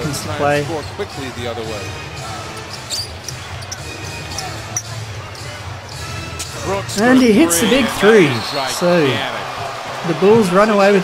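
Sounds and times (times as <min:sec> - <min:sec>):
sneaker squeaks: 0:01.8 - 0:05.5
crowd murmur: 0:02.1 - 0:10.4.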